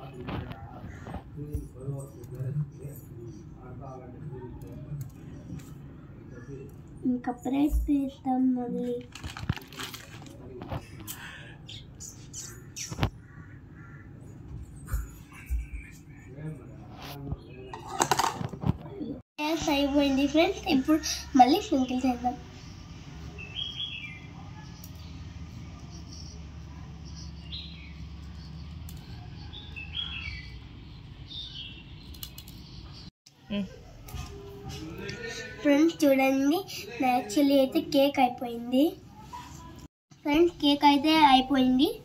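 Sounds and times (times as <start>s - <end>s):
small bird chirping: 21.9s - 33.1s.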